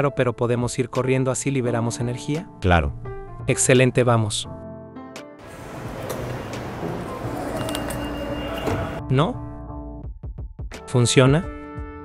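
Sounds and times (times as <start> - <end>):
background music: 0.0 - 12.0
busy subway station noise: 5.4 - 9.0.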